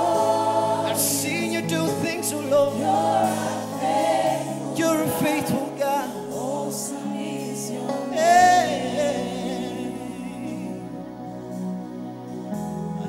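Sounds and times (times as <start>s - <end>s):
lead singer and choir singing: 0.0s - 13.0s.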